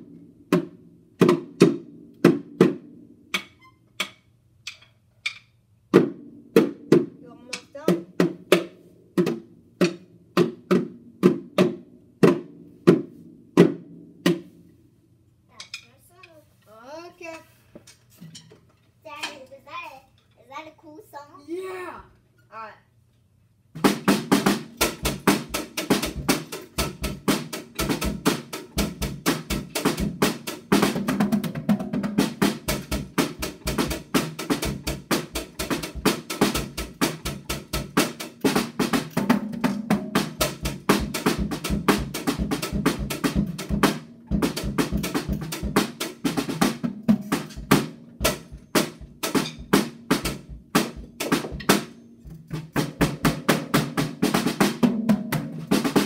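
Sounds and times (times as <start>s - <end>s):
drum kit playing fast: 23.8s - 56.0s.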